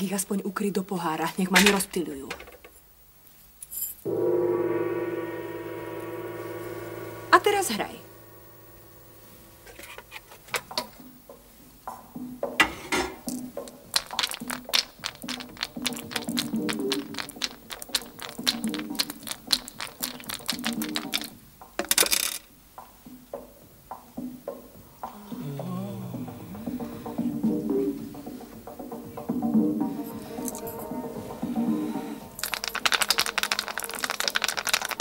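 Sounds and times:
dice clatter: 13.3s - 22.5s, 32.4s - 35.0s
dice shaken in a cup: 13.9s - 21.3s, 32.4s - 35.0s.

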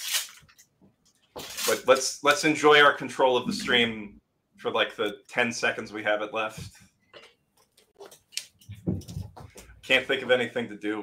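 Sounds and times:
small handling noises: 6.6s - 10.5s.

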